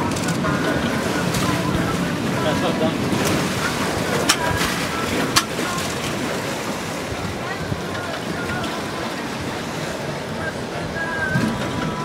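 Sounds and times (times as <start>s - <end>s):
ocean water around a boat: 0.0s - 12.0s
wind: 0.0s - 12.0s.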